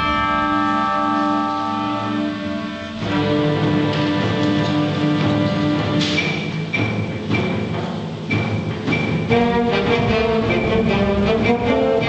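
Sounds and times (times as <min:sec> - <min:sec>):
concert band holding a chord: 0:00.0 - 0:06.0.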